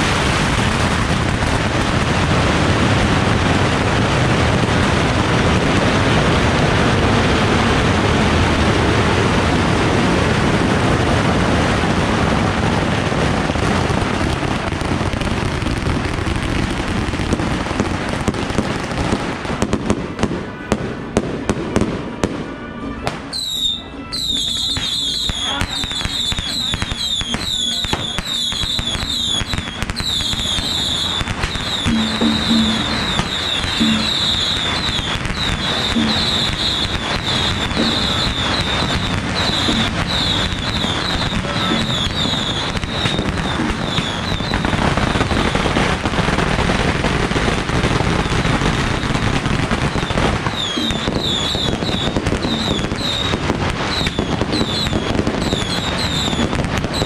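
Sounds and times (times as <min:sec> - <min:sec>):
firecrackers crackling: 0:00.0 - 0:57.0
crowd din: 0:19.6 - 0:46.6, 0:49.6 - 0:56.3.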